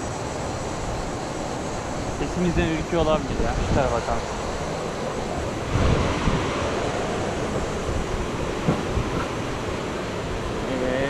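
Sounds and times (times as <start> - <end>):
fast-flowing stream rushing: 0.0 - 11.0
wind on microphone: 0.0 - 11.0.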